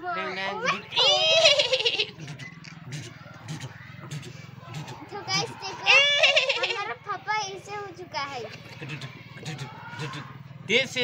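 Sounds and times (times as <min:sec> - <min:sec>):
quiet vocal noises: 0:02.1 - 0:05.7, 0:08.5 - 0:10.4.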